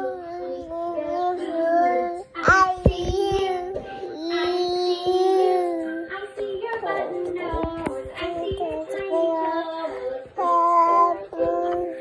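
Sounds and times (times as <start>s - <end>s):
child singing: 0.0s - 12.0s.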